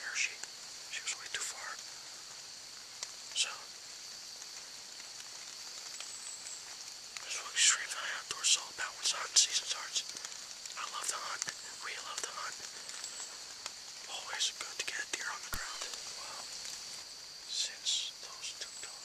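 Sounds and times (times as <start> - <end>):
man whispering: 0.0 - 1.9, 3.3 - 3.8, 7.2 - 16.8, 17.5 - 19.0
steady high hiss: 0.0 - 19.0.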